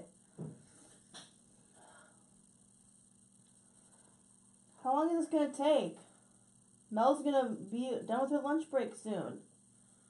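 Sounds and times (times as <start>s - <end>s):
faint electrical hum: 0.0s - 10.0s
person speaking: 4.8s - 6.0s.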